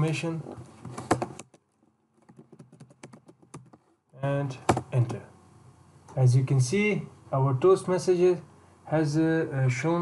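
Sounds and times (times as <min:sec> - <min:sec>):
computer keyboard typing: 0:00.9 - 0:01.6, 0:02.2 - 0:03.8, 0:04.6 - 0:05.2.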